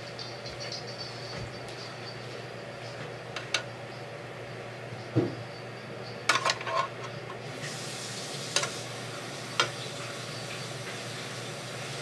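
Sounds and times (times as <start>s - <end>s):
steady hiss: 7.4s - 12.0s.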